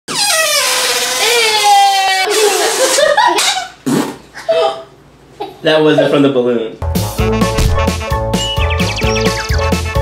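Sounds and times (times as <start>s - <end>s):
air squealing out of balloon: 0.1s - 2.3s.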